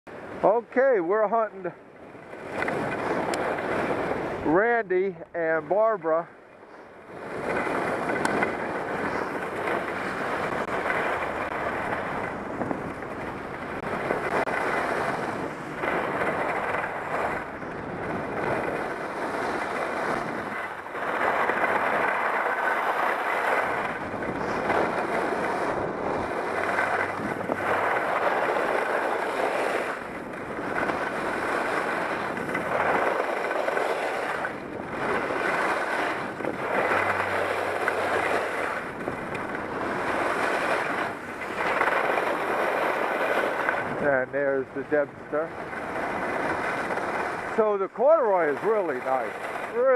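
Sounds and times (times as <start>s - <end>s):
skis scraping on snow: 0.1s - 49.9s
wind on microphone: 1.5s - 49.9s.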